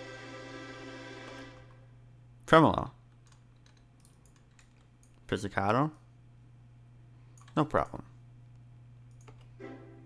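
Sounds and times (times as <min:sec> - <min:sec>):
violin chord: 0:00.0 - 0:01.8, 0:09.6 - 0:10.0.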